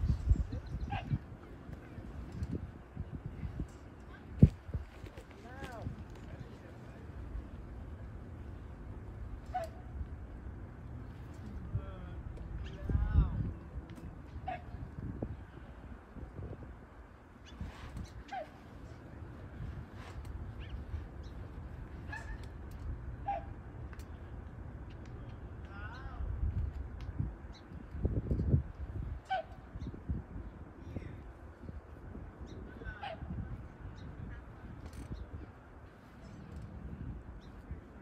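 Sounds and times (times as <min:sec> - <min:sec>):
wind rumble on microphone: 0:00.0 - 0:38.0.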